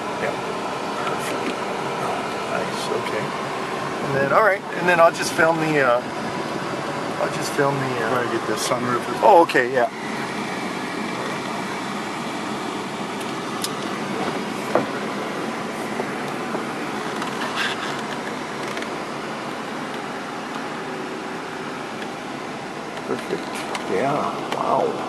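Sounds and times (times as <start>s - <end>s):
fan-like running noise in car: 0.0s - 25.0s
sunroof clicks and knocks: 13.8s - 15.1s.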